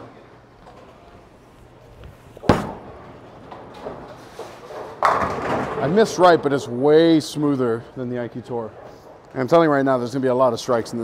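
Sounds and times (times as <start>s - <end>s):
bowling ball rolling: 0.6s - 6.2s
bowling ball thud on lane: 2.4s - 4.1s.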